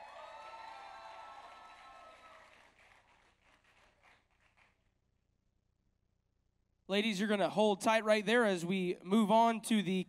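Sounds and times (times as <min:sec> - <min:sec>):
faint audience clapping: 0:00.0 - 0:04.9.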